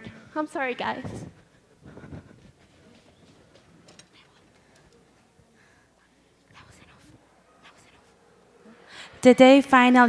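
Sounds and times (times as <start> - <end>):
faint scattered sounds: 0.0 - 9.2
soft background voices: 0.0 - 9.2.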